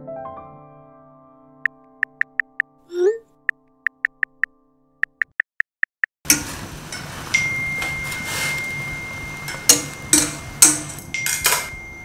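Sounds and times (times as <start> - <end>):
metal utensil clinking against pan: 6.3 - 12.0
high ringing tone: 7.3 - 12.0.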